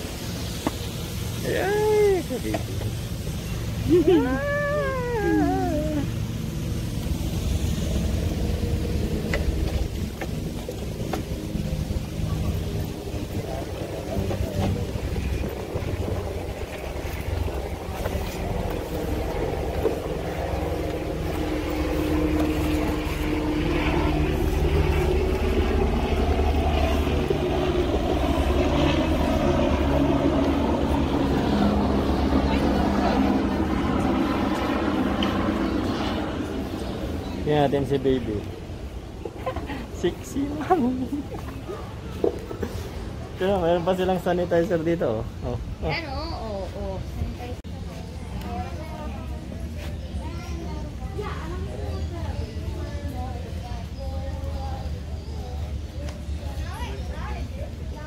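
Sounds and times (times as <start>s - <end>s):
low rumble: 0.0s - 42.0s
faint voices of people: 12.0s - 43.4s, 45.2s - 58.0s.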